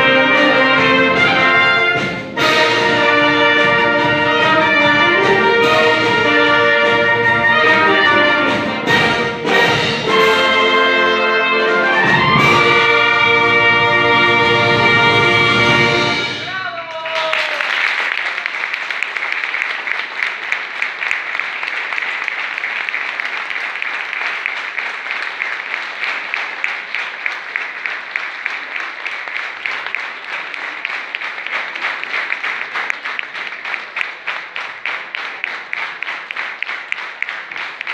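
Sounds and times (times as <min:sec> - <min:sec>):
audience applauding: 0:15.5 - 0:37.9.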